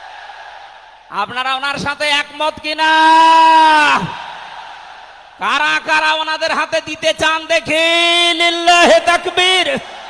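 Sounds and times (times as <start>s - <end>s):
echo in large tent: 0.0s - 10.0s
man shouting over loudspeaker: 1.1s - 4.2s, 5.4s - 9.9s.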